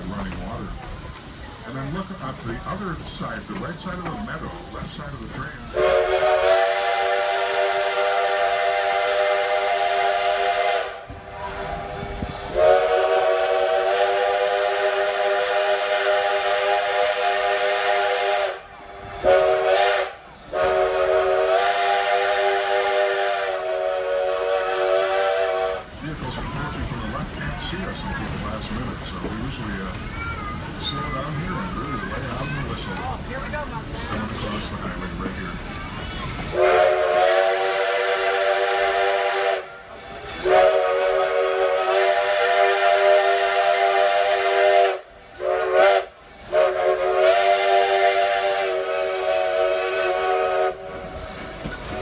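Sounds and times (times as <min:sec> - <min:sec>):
train running noise: 0:00.0 - 0:52.0
steam locomotive chime whistle: 0:19.2 - 0:25.8, 0:36.5 - 0:51.1.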